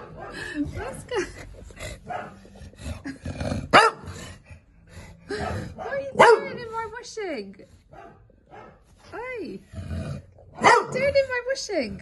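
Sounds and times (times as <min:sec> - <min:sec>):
dog barking: 0:00.0 - 0:00.4, 0:02.1 - 0:02.4, 0:03.7 - 0:04.1, 0:05.3 - 0:06.7, 0:07.9 - 0:08.8, 0:10.6 - 0:11.1
dog grumbling and growling: 0:00.3 - 0:07.3, 0:09.1 - 0:12.0.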